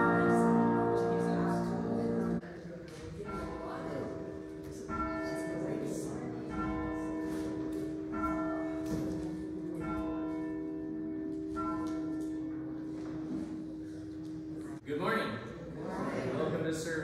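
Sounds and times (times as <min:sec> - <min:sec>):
bell tolling: 0:00.0 - 0:02.4.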